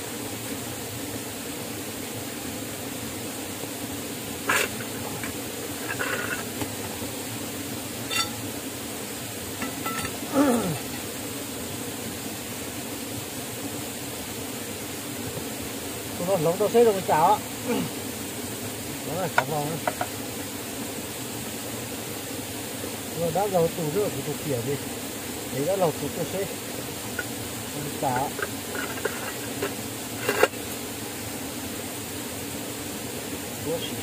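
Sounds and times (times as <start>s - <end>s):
steady hiss: 0.0s - 34.0s
person speaking a word: 19.0s - 19.9s, 27.7s - 28.4s.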